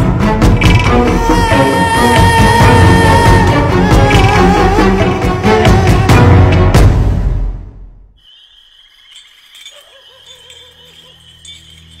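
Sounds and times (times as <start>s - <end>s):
insects chirring: 8.2s - 12.0s.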